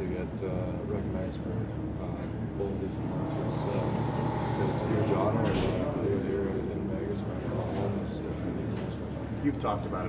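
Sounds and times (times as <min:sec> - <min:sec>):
steady low background hum: 0:00.0 - 0:10.0.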